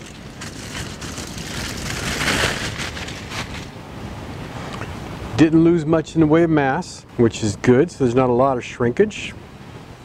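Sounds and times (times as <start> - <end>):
aluminium foil crinkling: 0.0 - 3.7.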